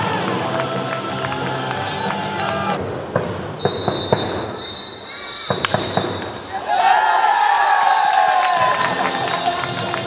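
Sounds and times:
background music: 0.0s - 2.8s, 8.6s - 10.0s.

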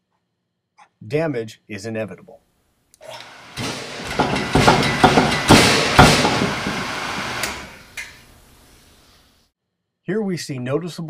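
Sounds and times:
brake lathe running: 3.1s - 8.4s
loud metallic rattling: 3.4s - 8.4s
metal clunks and grinding: 3.5s - 8.3s.

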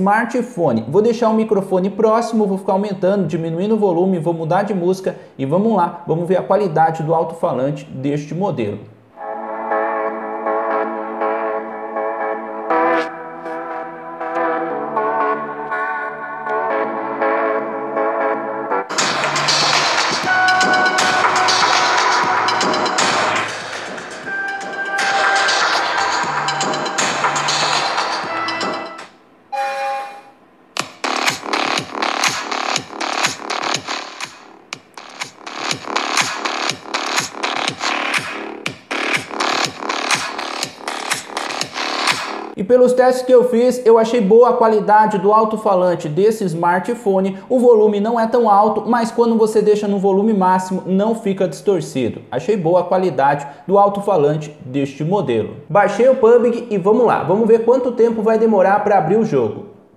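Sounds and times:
synth melody from phone speaker: 9.2s - 30.4s
electronic dance track with beat: 12.5s - 29.1s, 30.8s - 42.6s.

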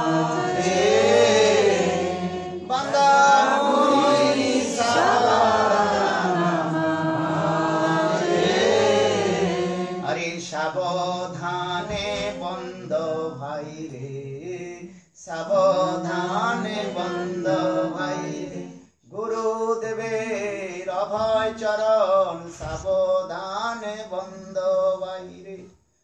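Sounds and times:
man chanting: 19.1s - 25.7s.

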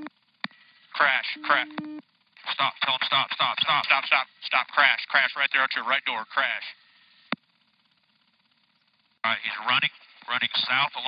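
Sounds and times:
faint radio hiss: 0.0s - 11.0s.

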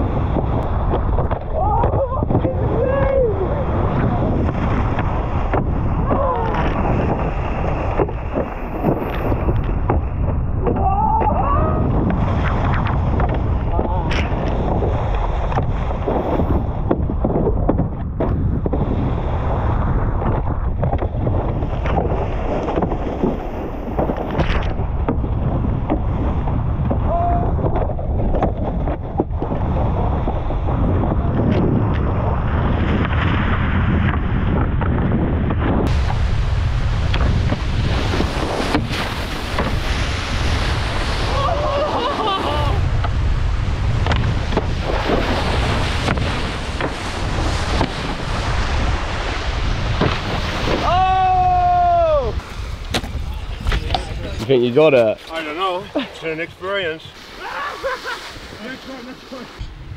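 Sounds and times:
wind buffeting microphone: 0.0s - 59.9s
water rushing and spraying: 35.8s - 59.9s.

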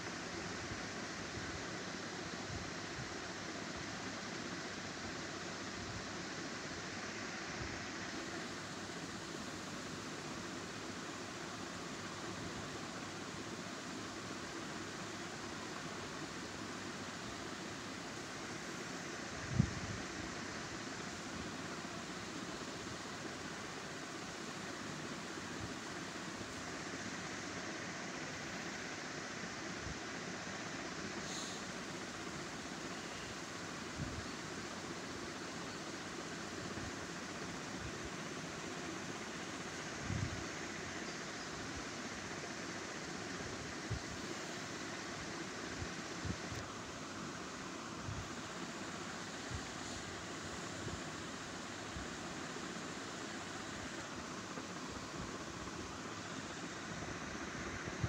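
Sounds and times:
steady background hiss: 0.0s - 58.0s.

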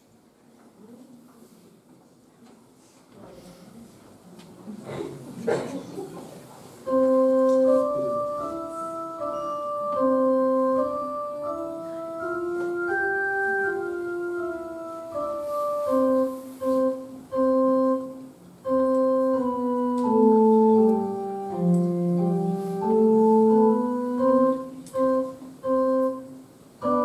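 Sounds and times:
electronic keyboard melody: 6.8s - 27.0s.

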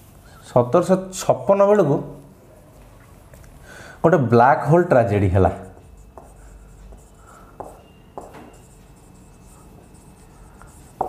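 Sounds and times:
marker scratching on whiteboard: 5.4s - 11.0s.

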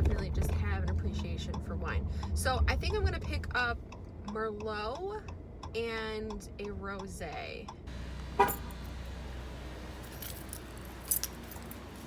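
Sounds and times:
car keys jangling: 8.4s - 8.9s, 10.0s - 12.0s.

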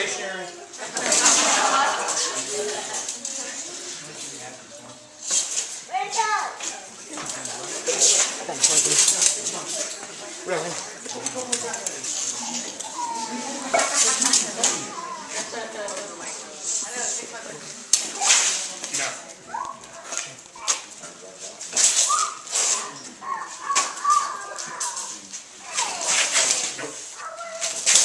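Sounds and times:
low voices of onlookers: 0.0s - 28.0s.

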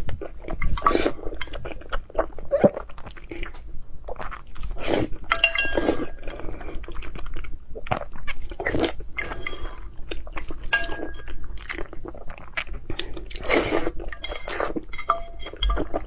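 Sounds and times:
chewing and wet mouth sounds: 0.0s - 16.0s
spoon and chopsticks clinking bowl: 5.3s - 6.3s, 10.7s - 11.4s, 14.1s - 16.0s.

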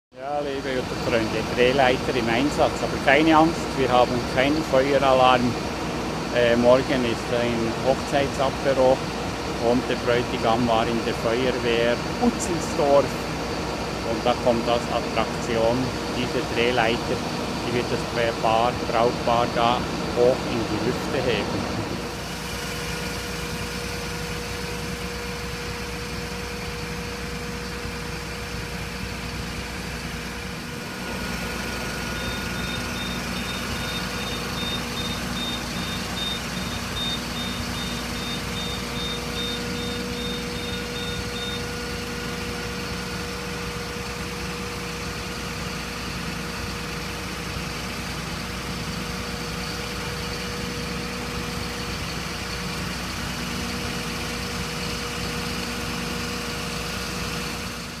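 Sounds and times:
truck engine humming: 0.1s - 58.0s
high-pitched warning beep: 32.0s - 41.9s.

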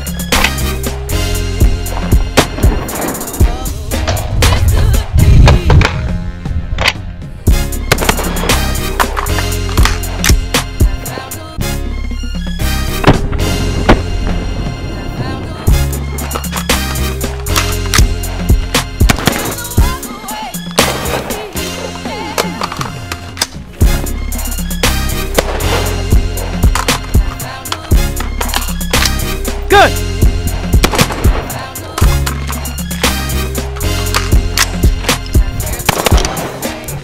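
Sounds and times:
music with heavy bass and beat: 0.0s - 6.5s, 7.5s - 11.4s, 15.7s - 22.2s, 23.8s - 37.0s
rifle shots: 19.0s - 19.7s, 30.8s - 31.7s.

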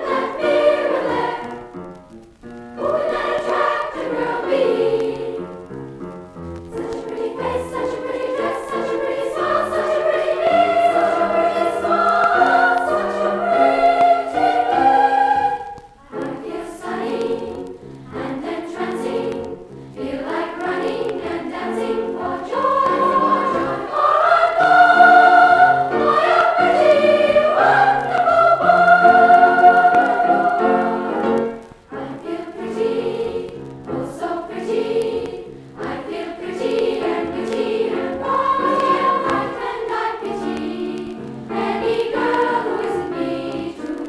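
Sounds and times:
choir singing on vinyl record: 0.0s - 44.0s.

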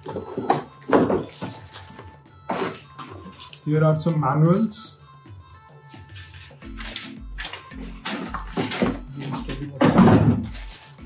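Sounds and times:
cardboard and plastic packaging rustling: 0.0s - 3.7s, 6.0s - 11.0s
faint background music: 0.0s - 11.0s.

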